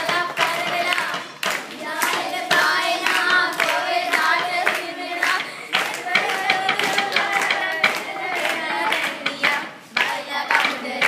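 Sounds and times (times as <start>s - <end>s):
girls singing together: 0.0s - 11.0s
hands clapping a steady beat: 0.0s - 11.0s.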